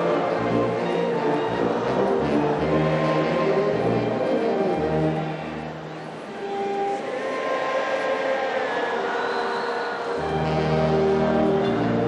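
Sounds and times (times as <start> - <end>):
large crowd noise: 0.0 - 12.0.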